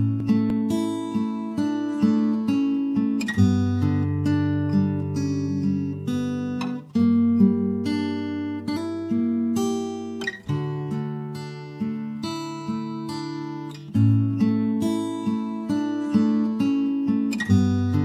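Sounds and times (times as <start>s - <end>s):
acoustic guitar slow chords: 0.0s - 18.0s.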